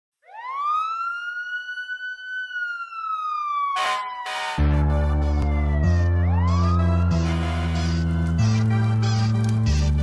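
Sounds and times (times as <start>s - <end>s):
siren-like wail: 0.2s - 9.8s.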